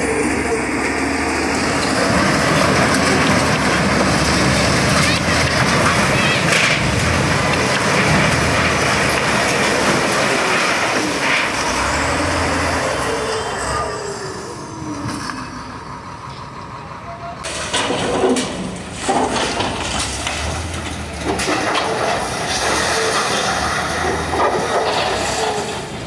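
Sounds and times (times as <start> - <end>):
diesel engines running: 0.0 - 26.0
concrete and metal crashing: 0.1 - 13.6, 17.4 - 26.0.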